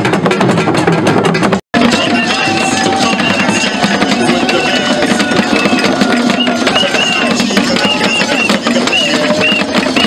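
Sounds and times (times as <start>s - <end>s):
hand drums playing fast rhythm: 0.0s - 10.0s
voices singing: 1.8s - 10.0s.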